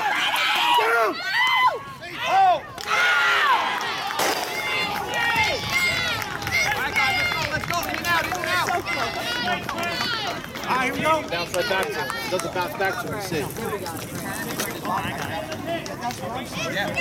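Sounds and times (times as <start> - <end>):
crowd shouting and cheering: 0.0 - 13.8, 14.7 - 17.0.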